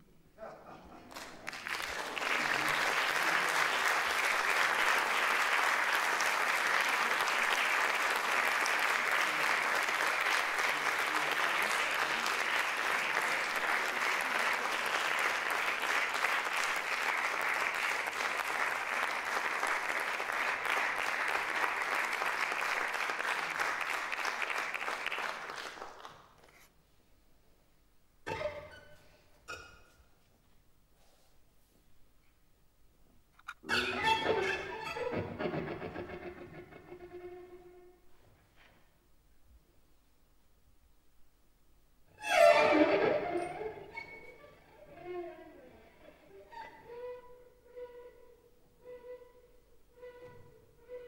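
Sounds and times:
audience applauding: 1.1 - 26.4.

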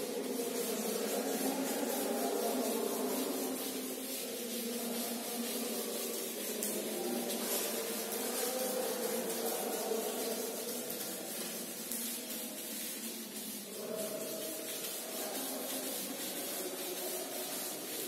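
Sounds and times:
eraser rubbing on whiteboard: 0.0 - 18.0.

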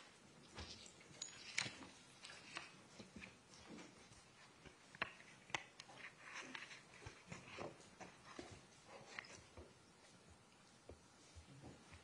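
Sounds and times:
footsteps: 0.0 - 12.0.

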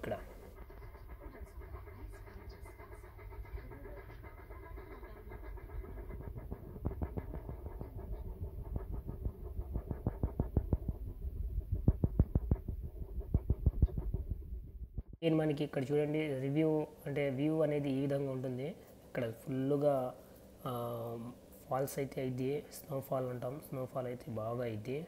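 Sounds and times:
steam locomotive chuffing: 0.0 - 11.0
low rumble: 0.0 - 15.2.

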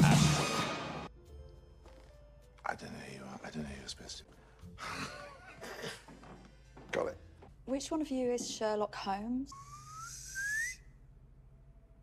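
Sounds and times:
breathy rising whistle: 9.5 - 11.0.

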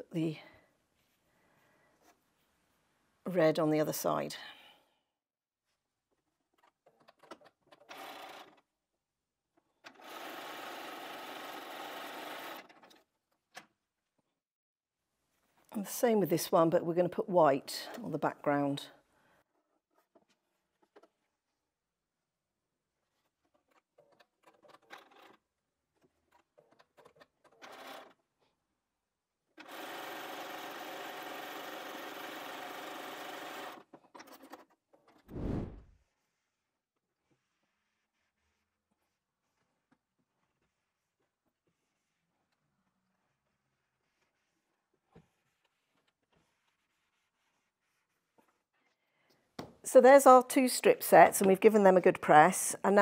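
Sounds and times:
sewing machine stitching: 9.8 - 13.1, 26.2 - 28.2, 29.6 - 34.8
fabric being handled: 35.3 - 36.0.

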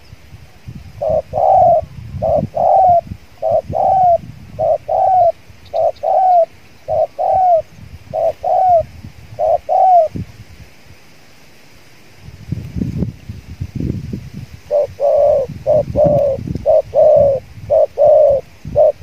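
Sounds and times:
dove cooing: 1.0 - 10.2, 14.7 - 19.0.

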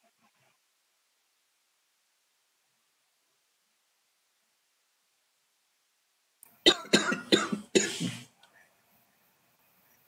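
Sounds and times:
person coughing: 6.7 - 8.3.

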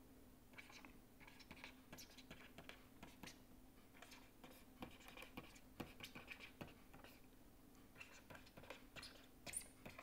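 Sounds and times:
stylus scratching on tablet: 0.5 - 7.3, 7.9 - 10.0.

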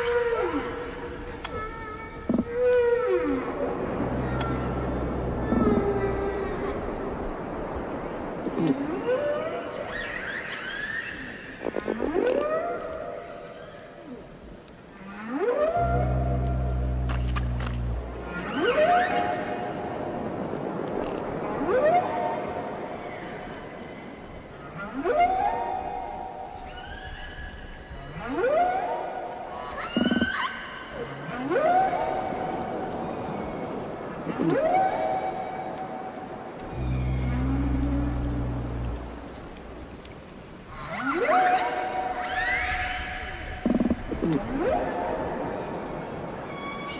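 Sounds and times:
long low whale moan: 0.0 - 7.8, 15.0 - 20.0, 36.6 - 40.2
ocean noise: 0.0 - 46.9
whales calling underwater: 0.0 - 46.9.

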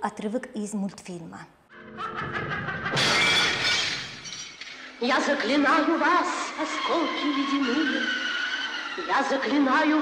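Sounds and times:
film soundtrack music: 1.7 - 10.0
glass shattering and tinkling: 3.0 - 4.8.

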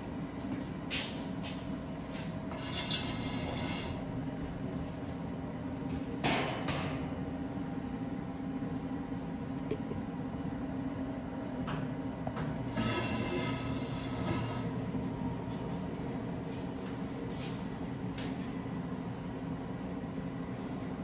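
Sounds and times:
oven fan humming: 0.0 - 21.0.

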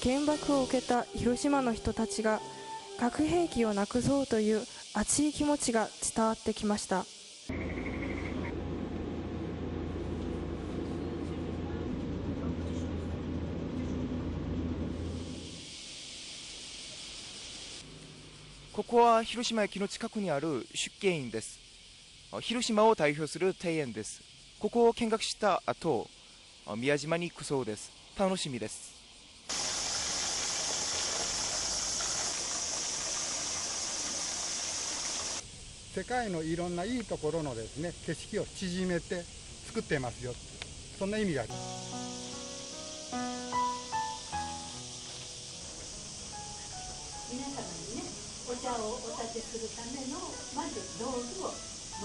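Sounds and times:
steady high-pitched hiss: 0.0 - 8.5, 13.8 - 52.0
cicadas shrilling: 0.0 - 8.6, 15.0 - 52.0
streetcar rumble: 7.5 - 15.8.

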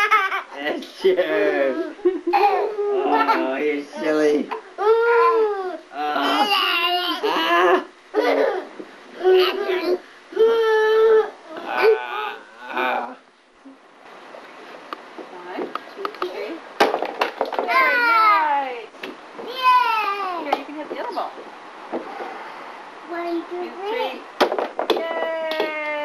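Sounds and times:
toddler crying: 4.8 - 7.8, 9.2 - 12.4
toy bat striking plastic ball: 24.4 - 25.7.

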